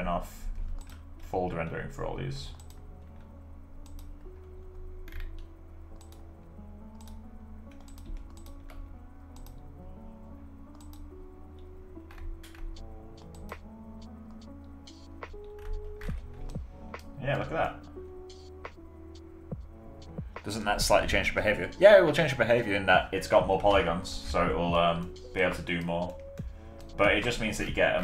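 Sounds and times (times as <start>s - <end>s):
soft background music: 0.0s - 28.0s
computer keyboard keys clicking: 0.7s - 1.0s, 2.5s - 6.3s, 6.9s - 9.6s, 10.7s - 17.1s, 25.8s - 27.5s.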